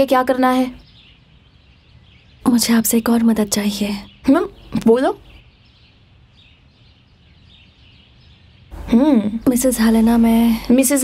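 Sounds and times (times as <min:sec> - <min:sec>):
woman speaking: 0:00.0 - 0:00.8, 0:02.4 - 0:05.3, 0:08.8 - 0:11.0
faint bird chirps: 0:00.0 - 0:11.0.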